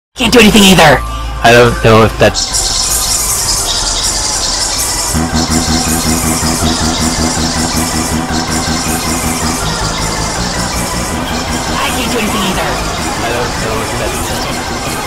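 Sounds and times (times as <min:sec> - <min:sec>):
layered cartoon music and voices: 0:00.2 - 0:15.0
low droning tone: 0:02.7 - 0:15.0.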